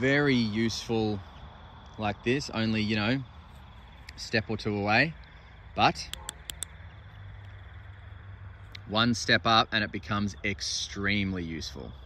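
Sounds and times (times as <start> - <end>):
steady low hum: 0.0 - 12.0
flashlight switch clicks: 6.1 - 6.7.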